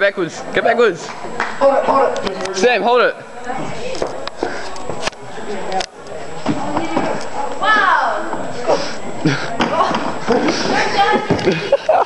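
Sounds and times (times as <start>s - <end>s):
boys laughing: 8.6s - 12.0s.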